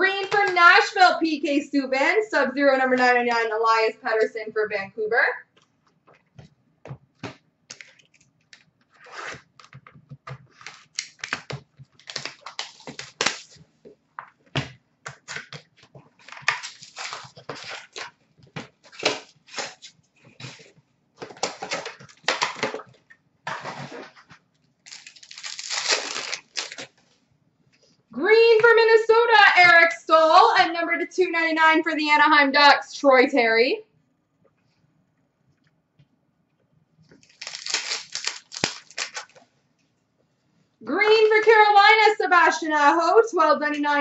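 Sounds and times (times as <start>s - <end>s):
cards being shuffled: 7.2s - 13.6s, 24.9s - 27.0s, 37.1s - 39.4s
foil wrappers crinkling and tearing: 10.5s - 13.6s, 16.2s - 18.2s, 18.8s - 20.7s, 24.8s - 27.0s, 37.2s - 39.4s.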